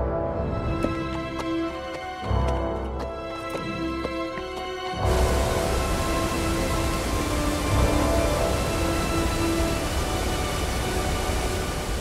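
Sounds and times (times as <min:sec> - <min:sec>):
water rushing from spillways: 0:03.2 - 0:12.0.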